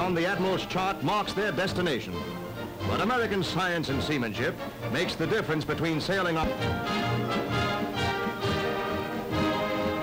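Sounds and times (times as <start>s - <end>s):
orchestral score with brass chords: 0.2s - 10.0s.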